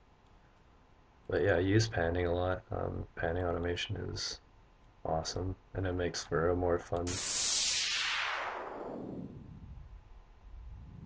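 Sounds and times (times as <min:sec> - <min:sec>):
filtered noise sweep: 0:07.0 - 0:11.0.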